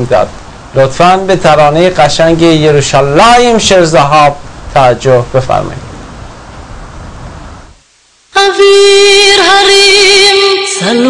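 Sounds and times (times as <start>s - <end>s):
signal noise hiss: 0.0s - 11.0s.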